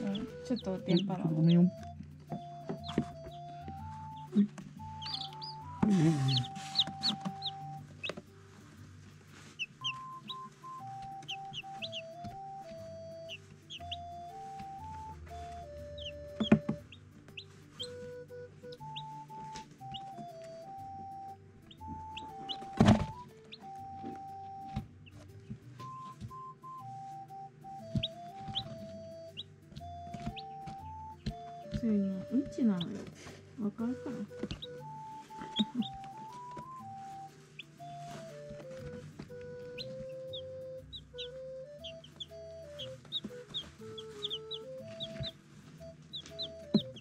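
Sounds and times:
background music: 0:00.0 - 0:47.0
chicks peeping: 0:00.0 - 0:47.0.

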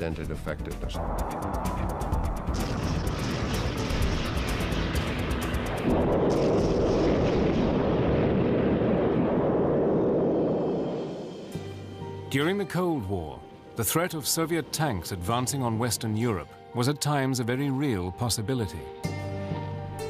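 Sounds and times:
background music: 0:00.0 - 0:07.6, 0:10.7 - 0:20.0
rumble of rounds exploding: 0:01.0 - 0:11.6
cannon firing: 0:02.4 - 0:10.1.

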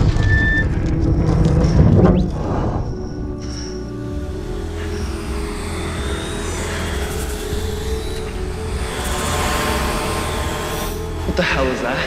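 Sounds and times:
background music with held tones: 0:00.0 - 0:12.0
quadcopter drone whirring: 0:02.1 - 0:12.0.

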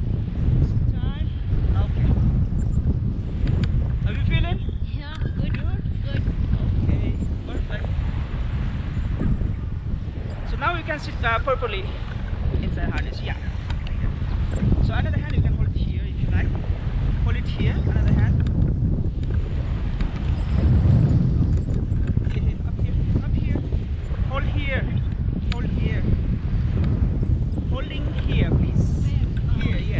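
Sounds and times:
wind buffeting microphone: 0:00.0 - 0:29.9.

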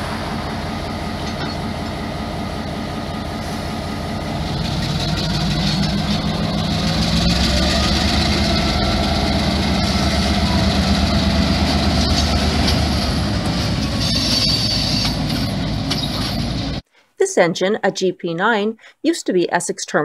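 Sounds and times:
diesel locomotive engine throttling: 0:00.0 - 0:16.8.

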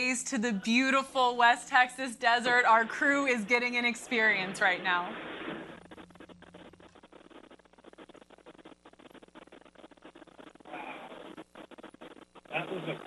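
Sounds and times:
static crackling and clicking: 0:00.0 - 0:13.0.

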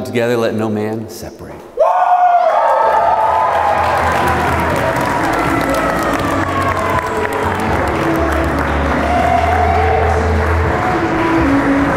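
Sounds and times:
people applauding and cheering: 0:01.8 - 0:11.9
music with sustained bass: 0:03.7 - 0:11.9.

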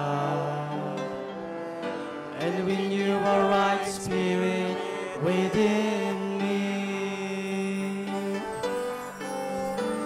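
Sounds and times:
man singing worship song: 0:00.0 - 0:01.3, 0:02.4 - 0:08.5.

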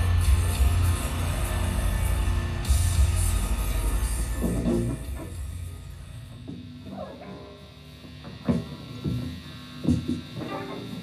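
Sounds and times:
amplifiers humming: 0:00.0 - 0:11.0.

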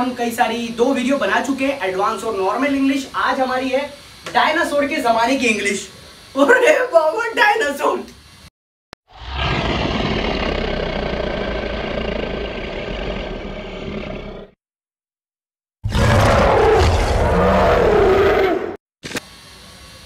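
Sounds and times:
dinosaur roar: 0:09.1 - 0:14.6, 0:15.8 - 0:18.8.

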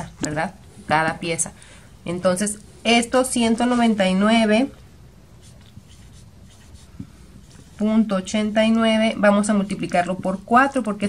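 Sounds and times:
marker writing on whiteboard: 0:05.4 - 0:07.9.

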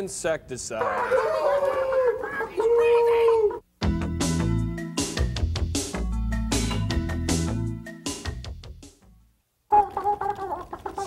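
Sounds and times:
chicken clucking and squawking: 0:09.7 - 0:11.0.

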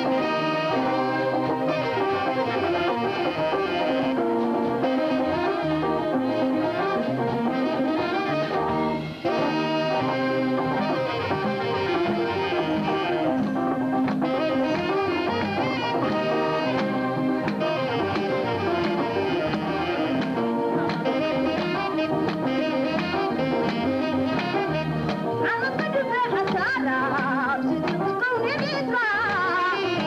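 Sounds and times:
electric guitars: 0:00.0 - 0:30.0
percussion strikes: 0:00.0 - 0:30.0
trumpet melody: 0:00.0 - 0:30.0.

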